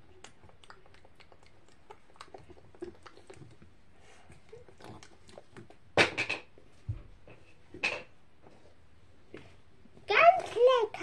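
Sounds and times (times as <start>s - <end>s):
biscuit crunching and chewing: 0.0s - 5.9s.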